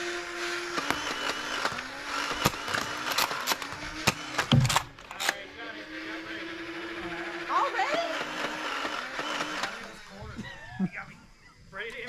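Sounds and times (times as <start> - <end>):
toy blaster motor whirring: 0.0 - 10.8.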